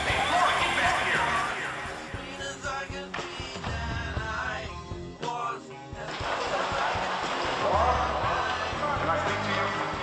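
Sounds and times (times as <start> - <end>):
rock song with distorted guitar: 0.0 - 10.0.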